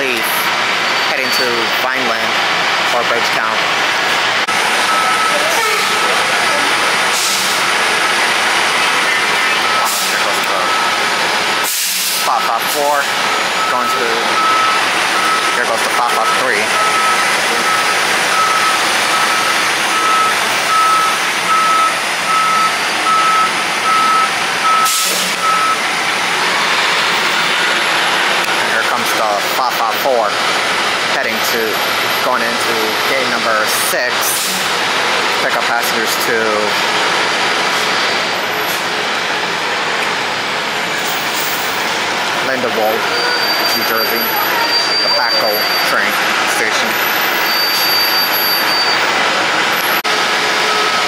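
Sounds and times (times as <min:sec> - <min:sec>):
bus engine running: 0:00.0 - 0:51.0
reversing alarm beeping: 0:04.8 - 0:27.6, 0:42.5 - 0:51.0.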